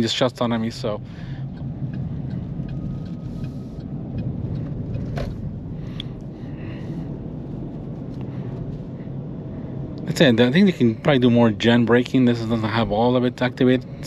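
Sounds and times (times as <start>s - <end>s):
road and tyre rumble in car: 0.0s - 14.0s.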